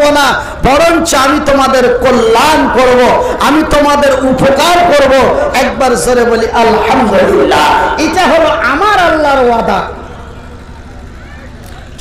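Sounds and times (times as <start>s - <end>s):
preacher shouting: 0.0s - 10.4s
low background rumble of gathering: 0.0s - 12.0s
faint murmur of voices: 10.0s - 12.0s.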